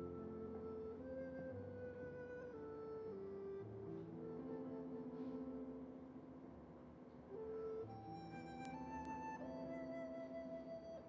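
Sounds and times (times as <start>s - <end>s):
slow soft instrumental music: 0.0s - 11.0s.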